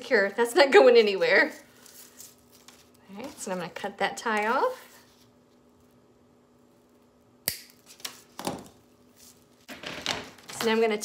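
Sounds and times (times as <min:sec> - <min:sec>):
soft handling sounds: 0:01.0 - 0:06.0.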